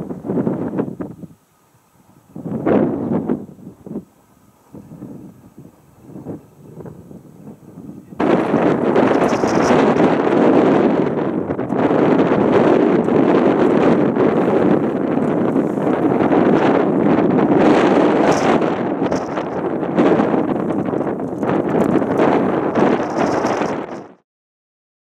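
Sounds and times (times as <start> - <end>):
wind buffeting microphone: 0.0 - 24.2.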